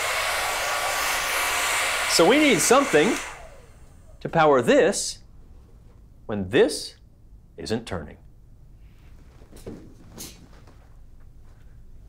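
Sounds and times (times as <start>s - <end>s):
hair dryer running: 0.0s - 4.2s.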